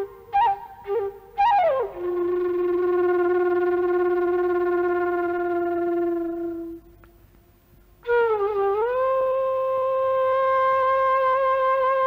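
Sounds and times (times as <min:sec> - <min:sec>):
bamboo flute long low note: 0:00.0 - 0:07.0, 0:08.0 - 0:12.0.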